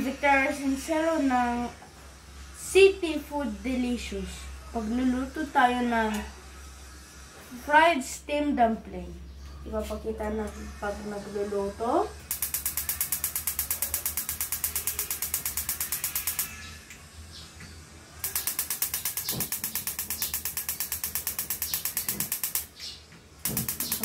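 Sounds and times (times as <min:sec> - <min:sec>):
gas stove igniter clicking: 0:12.3 - 0:16.6, 0:18.2 - 0:22.8, 0:23.4 - 0:24.0.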